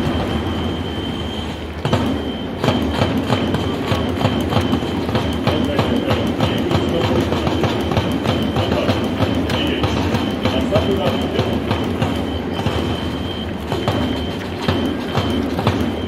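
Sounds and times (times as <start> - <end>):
electronic whistle held note: 0.0 - 6.5, 12.1 - 16.0
taiko and snare drums beating: 0.0 - 16.0.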